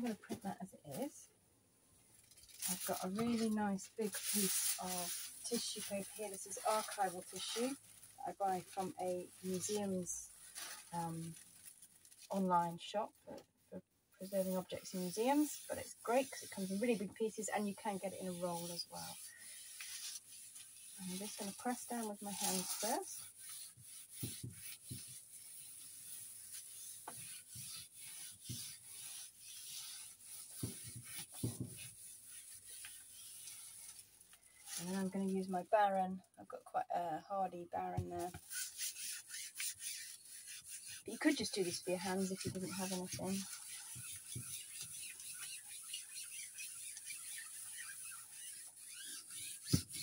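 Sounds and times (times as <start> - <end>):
hand rubbing tissue paper: 0.0 - 1.2, 2.2 - 13.4, 14.2 - 36.0, 37.8 - 50.0.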